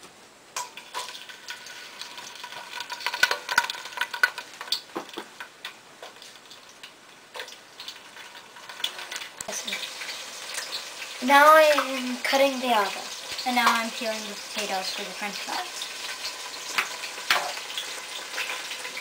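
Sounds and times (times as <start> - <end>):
onion sizzling in hot oil: 0.4 - 19.0
oil crackling and popping: 0.5 - 19.0.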